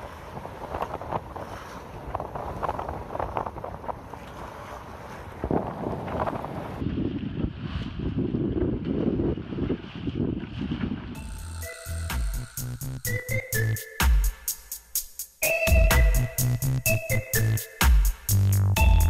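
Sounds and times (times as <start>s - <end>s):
wind buffeting microphone: 0.0s - 11.2s
sea rushing along hull: 0.0s - 12.4s.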